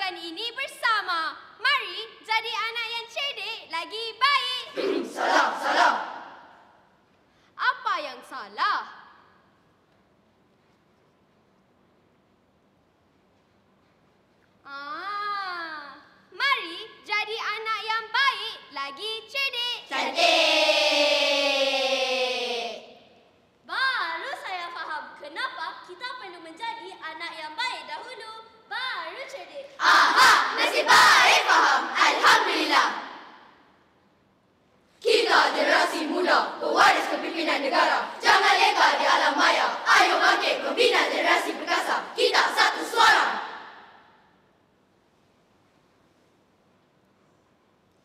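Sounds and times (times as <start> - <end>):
children's choir singing: 4.7 - 6.5, 19.9 - 23.0, 29.8 - 33.4, 35.0 - 43.9.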